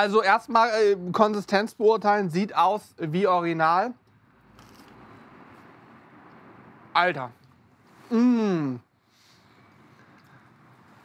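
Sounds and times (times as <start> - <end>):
chewing fried food: 4.5 - 6.5.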